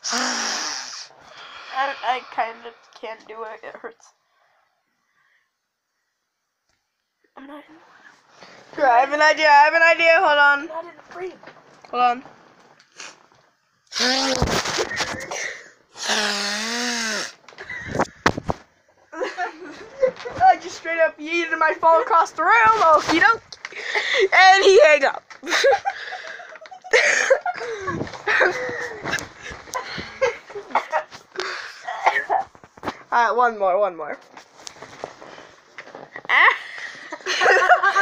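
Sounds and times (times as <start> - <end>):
person speaking: 1.4 - 4.0.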